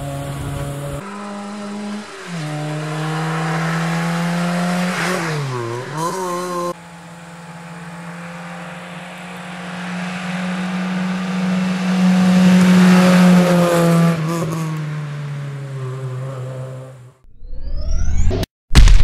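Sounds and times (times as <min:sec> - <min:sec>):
rally car engine at high revs: 0:00.0 - 0:17.2
rising whoosh sound effect: 0:17.3 - 0:18.5.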